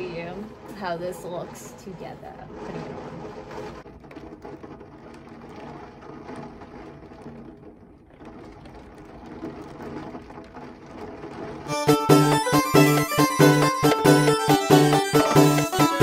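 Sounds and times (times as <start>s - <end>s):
heavy rain pouring: 8.2s - 16.0s
loud music: 11.7s - 16.0s.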